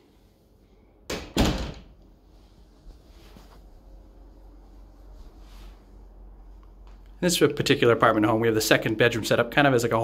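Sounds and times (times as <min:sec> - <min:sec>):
door thump: 0:01.1 - 0:02.0.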